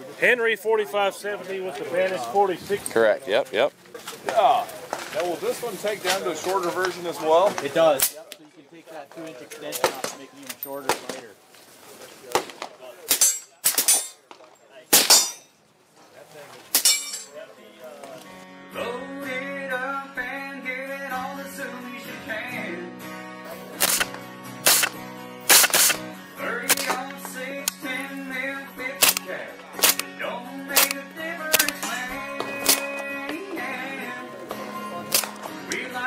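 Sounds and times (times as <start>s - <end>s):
background music with steady beat: 18.3s - 36.0s
suppressed rifle shots: 23.8s - 26.0s, 29.0s - 30.1s, 30.7s - 31.8s, 32.5s - 33.0s.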